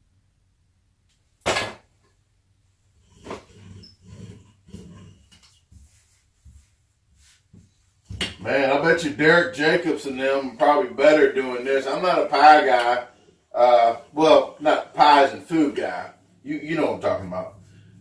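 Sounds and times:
rolling pin rolling over dough: 3.0 - 18.0.

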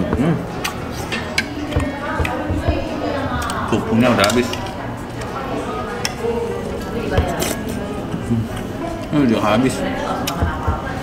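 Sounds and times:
room murmur: 0.0 - 11.0.

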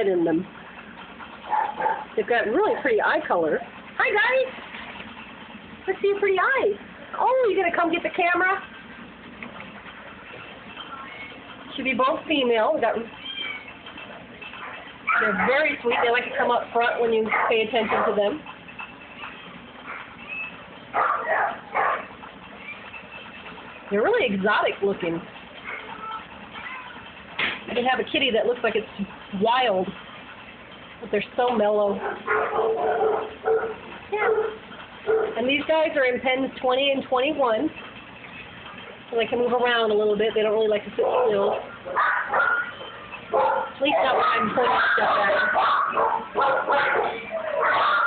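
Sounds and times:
dogs yipping and barking: 0.9 - 2.9, 12.9 - 23.9, 25.6 - 27.2, 31.9 - 35.6, 40.9 - 48.0.

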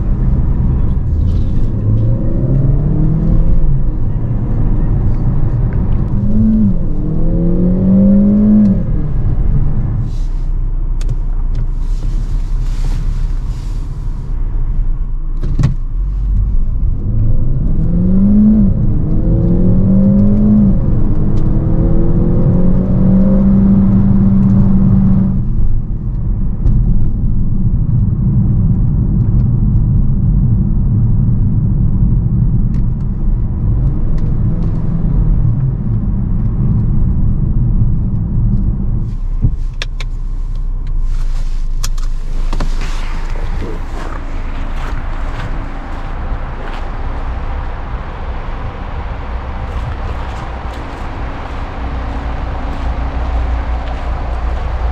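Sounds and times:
car engine revving through upshifts: 0.0 - 10.4, 16.1 - 25.6, 33.3 - 54.9
road and tyre rumble: 0.0 - 54.9.

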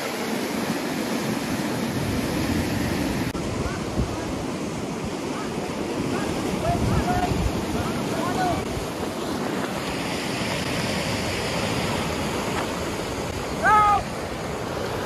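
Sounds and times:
whitewater rapids rushing: 0.0 - 15.0.

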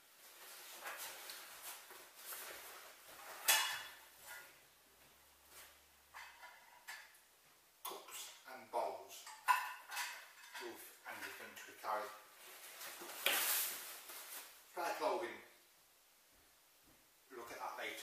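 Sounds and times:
fabric rustling: 0.0 - 4.6, 12.3 - 14.7.

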